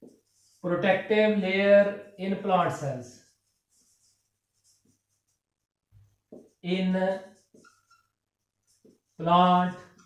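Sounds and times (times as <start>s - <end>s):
marker scratching on whiteboard: 0.0s - 10.0s.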